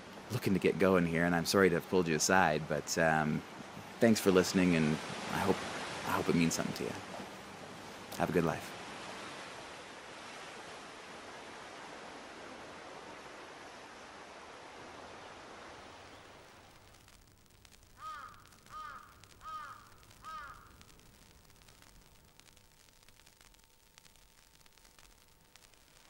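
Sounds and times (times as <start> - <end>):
surf rushing: 0.0 - 17.1
crow cawing: 18.0 - 20.8.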